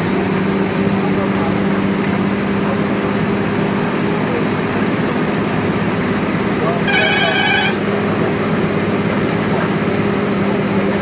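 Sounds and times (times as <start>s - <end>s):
train running noise: 0.0s - 11.0s
train horn: 6.8s - 7.9s.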